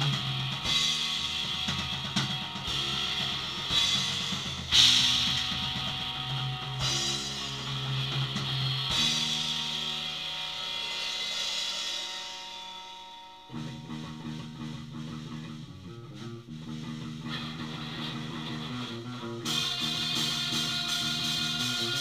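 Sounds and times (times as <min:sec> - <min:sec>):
guitar and bass playing: 0:00.0 - 0:22.0.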